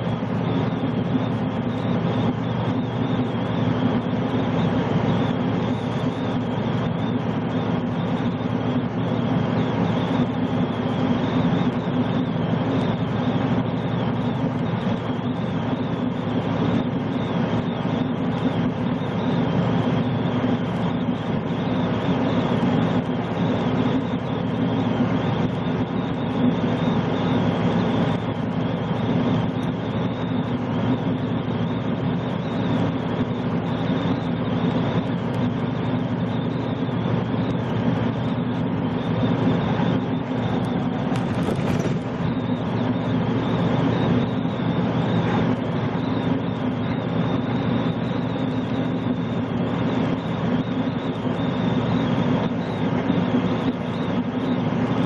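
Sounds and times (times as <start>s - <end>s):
diesel engine hum: 0.0s - 55.0s.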